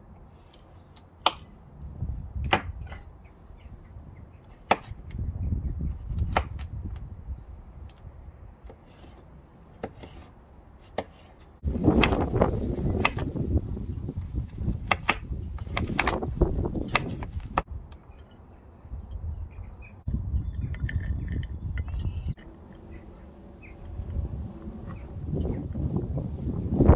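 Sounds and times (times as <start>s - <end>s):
low rumble: 19.0s - 26.9s.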